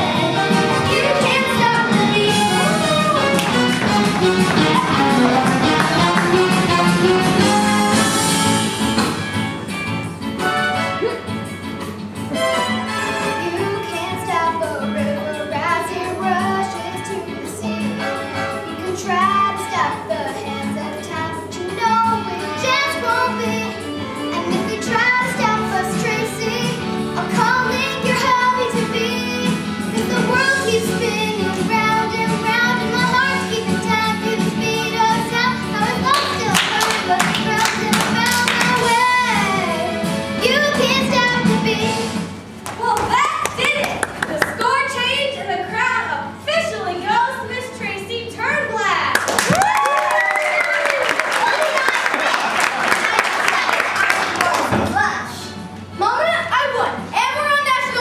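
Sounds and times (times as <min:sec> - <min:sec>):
child singing: 0:00.0 - 0:03.8, 0:13.4 - 0:42.1
backing music: 0:00.0 - 0:50.5
scattered hand claps: 0:02.6 - 0:07.0, 0:36.0 - 0:39.0, 0:42.6 - 0:44.7, 0:49.1 - 0:55.0.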